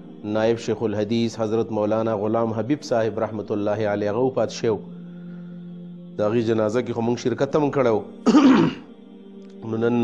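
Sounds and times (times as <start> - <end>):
soft background music: 0.0 - 10.0
man clearing throat: 8.2 - 8.9.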